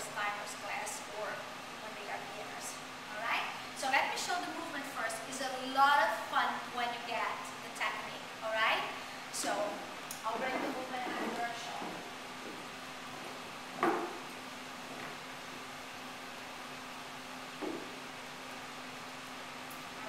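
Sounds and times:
low room hum: 0:00.0 - 0:20.0
boots knocking on wooden floor: 0:11.0 - 0:15.2, 0:17.6 - 0:18.0.

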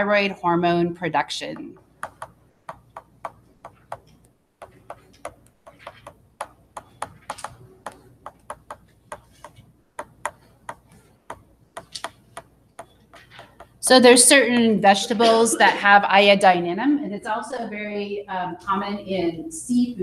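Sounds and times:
stylus tapping and scraping: 0:01.5 - 0:14.1.

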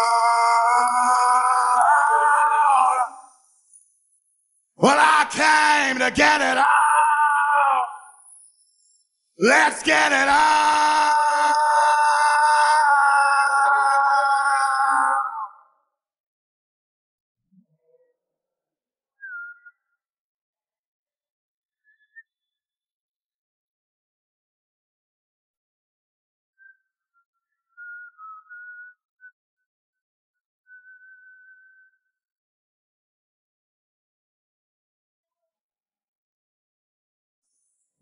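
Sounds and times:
man singing a long note: 0:00.0 - 0:03.2, 0:09.4 - 0:15.6
person whistling a melody: 0:27.6 - 0:29.4.

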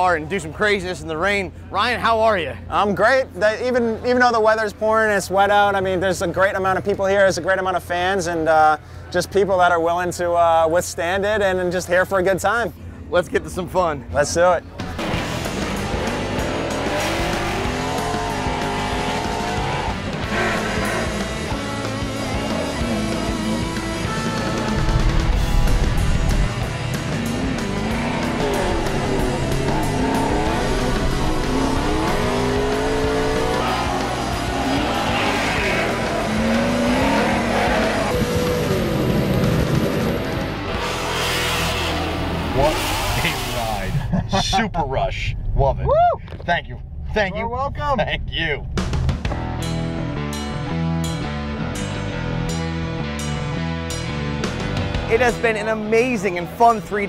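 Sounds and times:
background music: 0:11.1 - 0:44.6, 0:48.5 - 0:57.0
car engine revving: 0:14.8 - 0:44.1.

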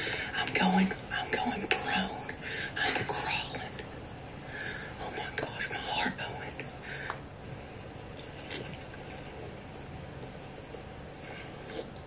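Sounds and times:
man whispering: 0:00.2 - 0:03.9, 0:04.9 - 0:06.8.

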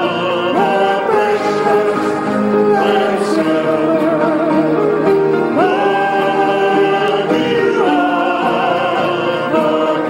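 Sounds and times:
voices singing gospel song: 0:00.0 - 0:10.0.

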